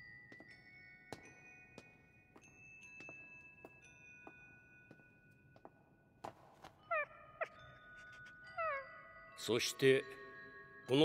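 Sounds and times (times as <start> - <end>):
soft ringing chime tones: 0.0 - 6.2, 6.8 - 11.0.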